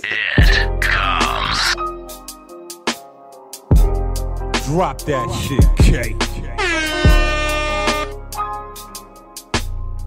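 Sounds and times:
hip hop beat: 0.4 - 10.0
air horn sound effect: 6.4 - 8.2.

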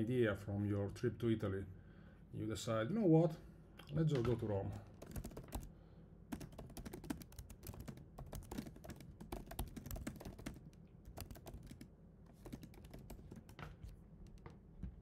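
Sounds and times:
typing on computer keyboard: 4.9 - 5.7, 6.3 - 14.5.

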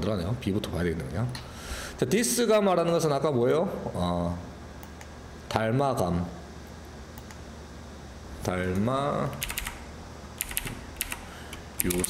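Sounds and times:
keyboard keys clicking: 9.4 - 9.8, 10.4 - 11.2, 11.8 - 12.0.

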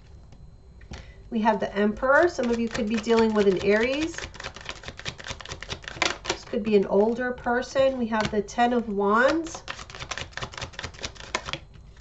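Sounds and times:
cards clicking and snapping: 2.4 - 6.5, 9.2 - 11.6.

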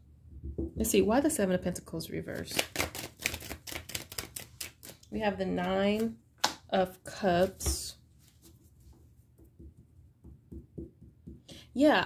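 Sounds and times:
cards being shuffled: 2.4 - 6.6.

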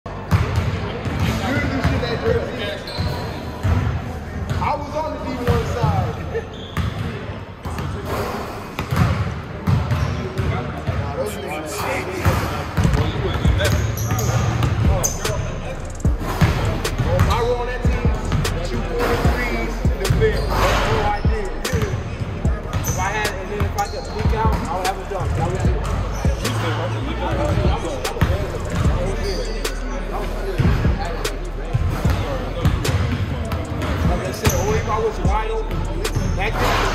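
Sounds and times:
players' voices echoing: 0.1 - 36.9
basketballs bouncing on hardwood floor: 0.3 - 2.1, 8.8 - 11.0, 27.2 - 29.0, 32.1 - 34.5.

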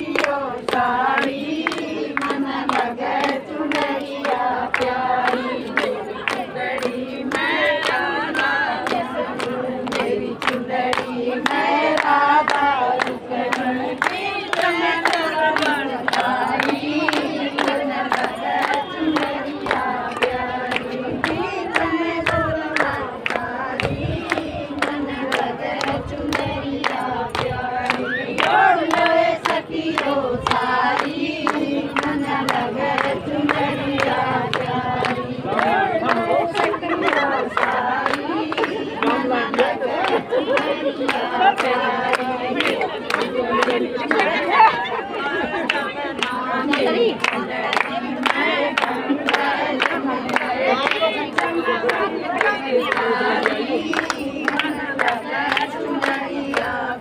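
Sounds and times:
rhythmic hand clapping: 0.0 - 57.0
women singing in chorus: 0.0 - 57.0.

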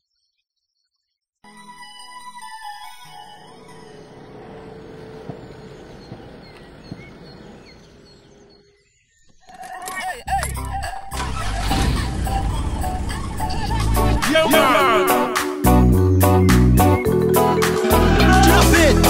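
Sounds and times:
loud music from radio: 11.2 - 15.7, 17.6 - 19.0.

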